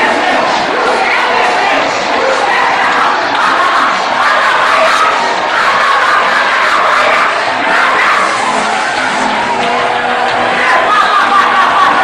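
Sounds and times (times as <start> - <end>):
crowd crying out and shouting: 0.0 - 12.0.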